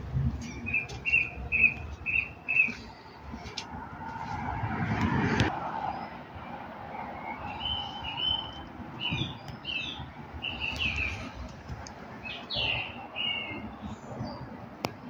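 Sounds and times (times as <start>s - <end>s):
rush of noise: 0.0s - 9.4s
small birds chirping: 0.4s - 3.1s, 7.4s - 11.5s, 12.2s - 14.5s.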